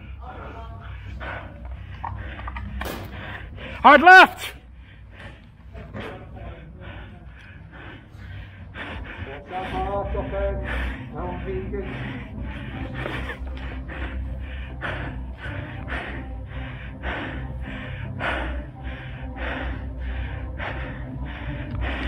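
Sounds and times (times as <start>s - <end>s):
person breathing hard into mask: 0.0s - 3.9s, 4.5s - 22.0s.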